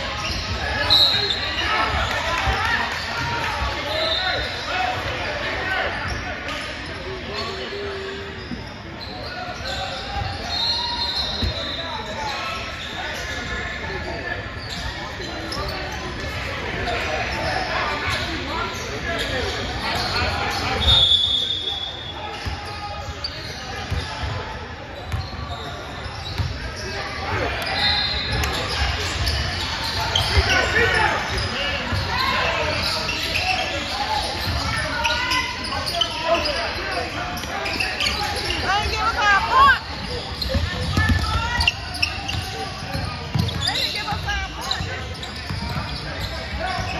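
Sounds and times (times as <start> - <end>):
voices echoing in gym: 0.0 - 46.9.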